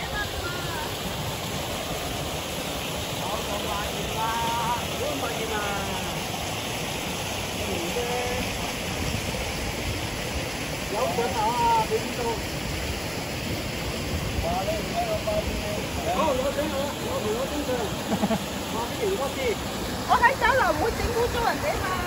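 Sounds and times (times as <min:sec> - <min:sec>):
stream running over rocks: 0:00.0 - 0:22.0.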